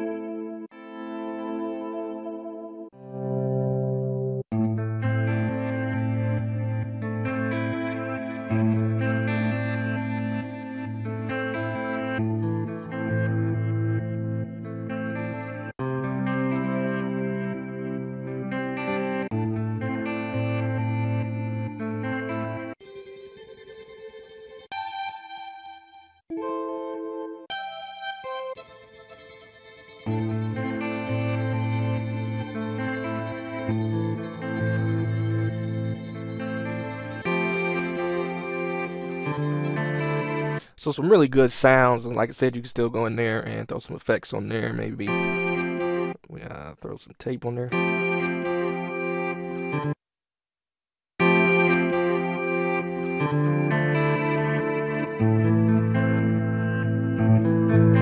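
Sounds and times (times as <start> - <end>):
high picked guitar notes: 0.0 - 22.8, 23.4 - 43.7, 44.4 - 49.9, 51.2 - 58.0
ambient guitar chords: 0.0 - 43.6, 44.5 - 46.2, 47.7 - 50.0, 51.2 - 58.0.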